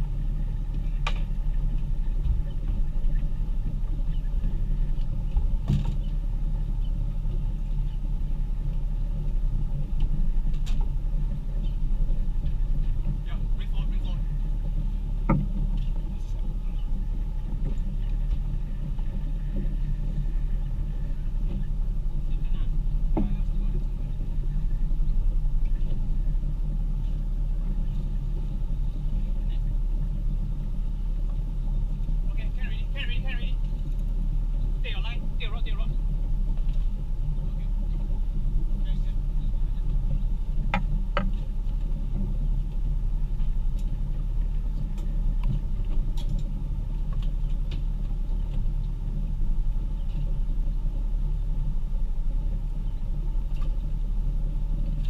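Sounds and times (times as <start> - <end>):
boat engine idling: 0.0 - 55.0.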